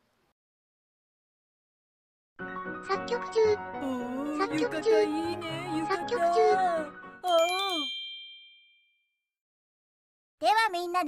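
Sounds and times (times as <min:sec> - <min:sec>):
bell-like ding chime: 0:07.2 - 0:09.2.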